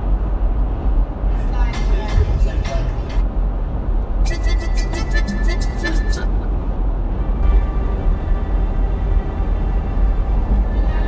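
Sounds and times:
car rumbling on road: 0.0s - 11.0s
song with singing voice: 4.2s - 6.4s.

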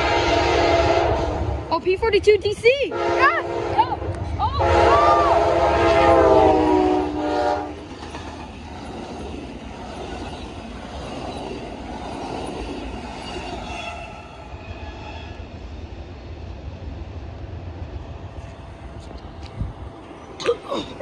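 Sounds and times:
locomotive horn chord: 0.0s - 1.5s, 2.9s - 3.8s, 4.6s - 7.8s
train wheels clattering on rails: 7.4s - 14.1s.

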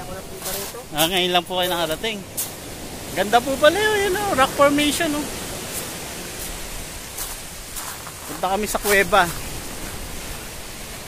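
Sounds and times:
footsteps on pebbles: 0.0s - 2.6s, 5.7s - 10.0s
surf: 0.0s - 11.0s
wind: 0.0s - 11.0s.

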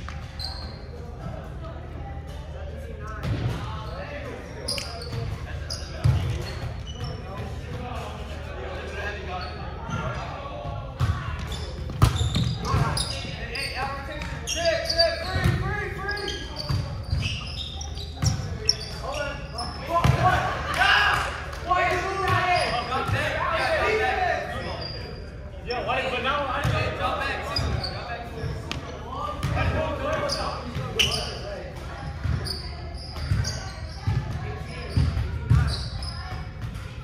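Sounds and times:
players' indistinct calls: 0.0s - 37.0s.

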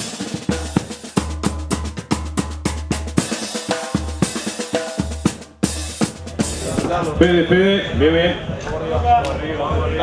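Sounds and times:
drum section playing fast beat: 0.0s - 10.0s.

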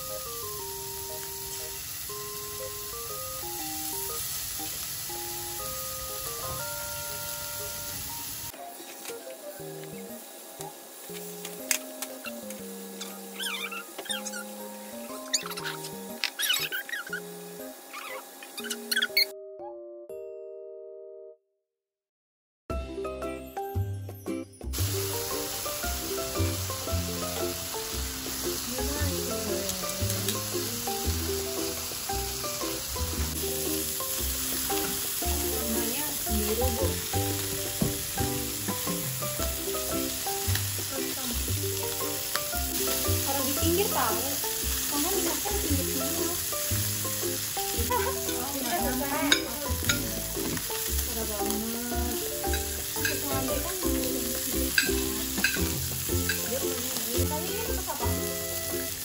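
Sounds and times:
food sizzling in skillet: 0.0s - 19.3s, 24.6s - 59.0s
metal tongs scraping pan: 48.0s - 50.7s, 52.4s - 53.5s, 54.7s - 56.5s.

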